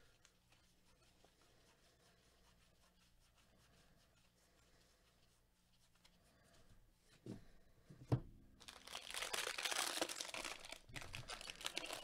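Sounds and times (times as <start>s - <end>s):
trading cards rustling and ticking: 8.6s - 12.0s.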